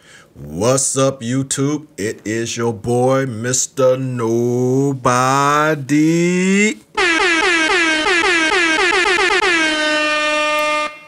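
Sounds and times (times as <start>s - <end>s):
air horn blasts: 6.9s - 11.0s.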